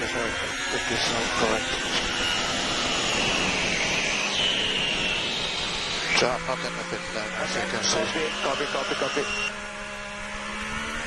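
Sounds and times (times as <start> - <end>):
wind noise: 0.0 - 6.4
high whine: 0.0 - 11.0
race car engine running: 0.0 - 11.0.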